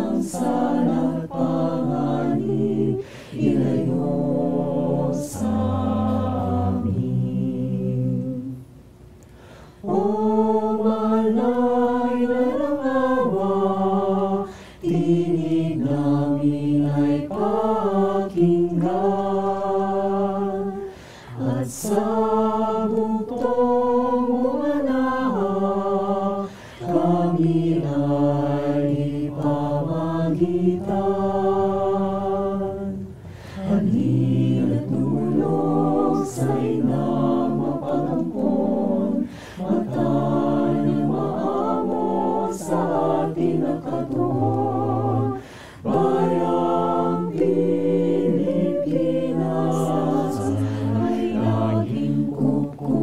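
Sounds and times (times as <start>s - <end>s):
choir singing a cappella: 0.0s - 8.8s, 9.4s - 53.0s.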